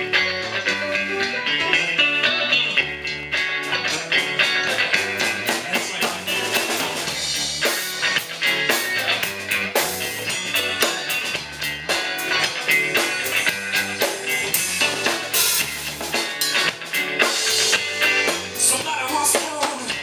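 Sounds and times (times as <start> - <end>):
bass guitar: 0.0 - 20.0
drum kit beat with cymbals: 0.0 - 20.0
electric guitars: 0.0 - 20.0
keyboard: 0.0 - 20.0.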